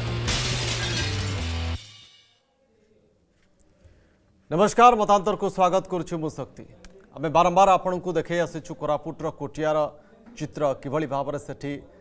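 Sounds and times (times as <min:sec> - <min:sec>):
shattering crash effect: 0:00.0 - 0:02.4
tv title music: 0:00.0 - 0:02.4.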